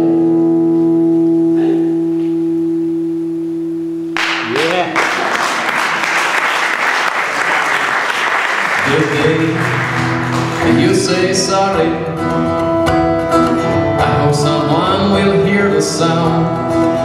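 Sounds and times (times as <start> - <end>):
audience applause: 4.2 - 11.1.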